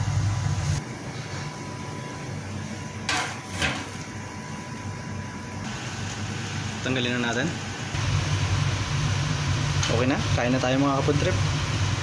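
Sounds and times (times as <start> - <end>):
kitchen fan humming: 0.0 - 12.0.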